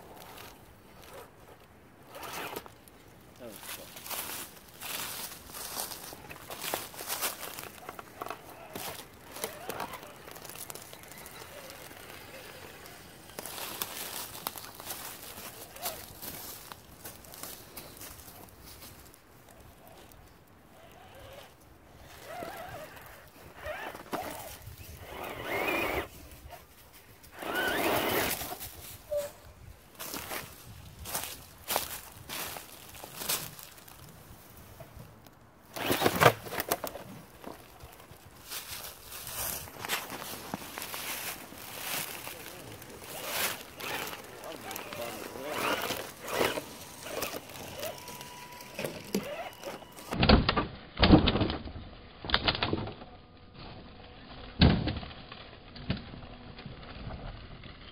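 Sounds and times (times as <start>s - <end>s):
rc truck drivetrain whirring: 0.0s - 2.7s, 6.2s - 16.4s, 19.5s - 26.6s, 27.3s - 28.6s, 35.7s - 38.7s, 39.8s - 50.2s, 52.6s - 54.6s, 55.3s - 57.9s.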